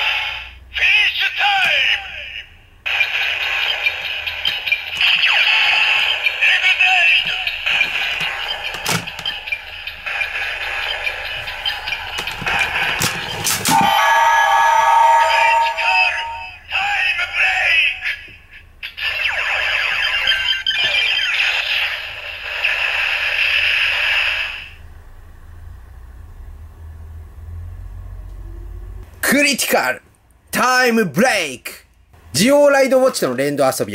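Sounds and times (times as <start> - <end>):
toy speaker music: 1.7 - 14.3, 18.9 - 21.4
toy belt electronic sound effects: 1.8 - 24.8.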